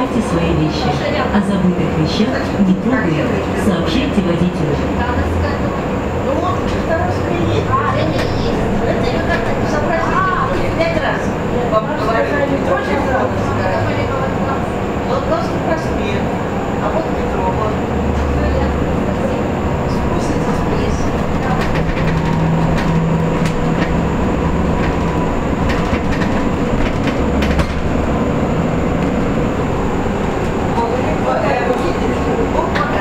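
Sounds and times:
road and tyre rumble: 0.0s - 33.0s.

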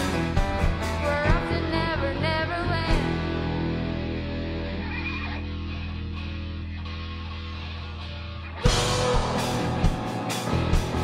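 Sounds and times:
electric and bass guitar chord: 0.0s - 11.0s.

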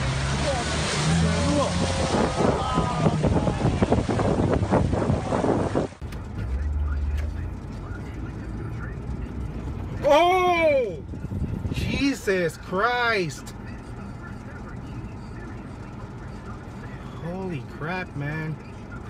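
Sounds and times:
water rushing and spraying: 0.0s - 6.0s
car driving through floodwater: 0.0s - 19.0s
engine and road hum inside car: 0.0s - 19.0s
excited voices: 0.5s - 3.9s.

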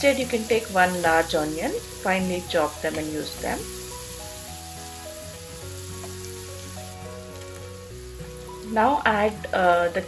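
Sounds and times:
onions sizzling in hot oil: 0.0s - 10.0s
soft slow background music: 0.0s - 10.0s.

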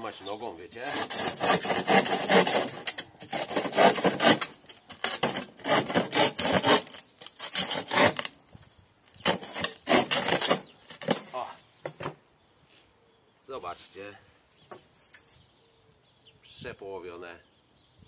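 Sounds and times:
saw cutting wooden board: 0.8s - 8.4s, 9.2s - 11.5s.

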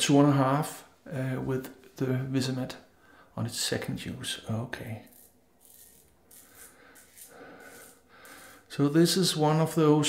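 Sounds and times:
razor scraping stubble: 5.1s - 8.7s.

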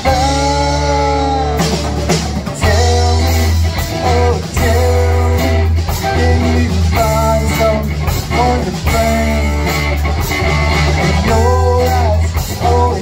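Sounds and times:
drum kit beat: 0.0s - 13.0s
electric bass: 0.0s - 13.0s.

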